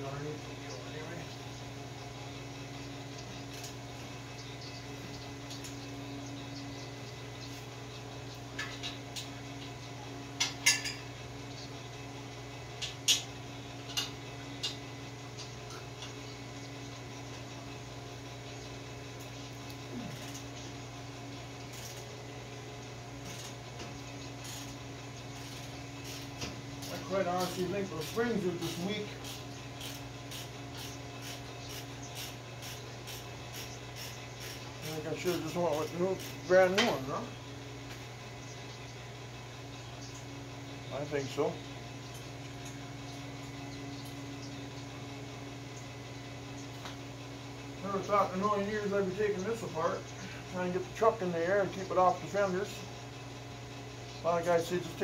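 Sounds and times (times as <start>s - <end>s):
steady electrical hum: 0.0s - 55.0s.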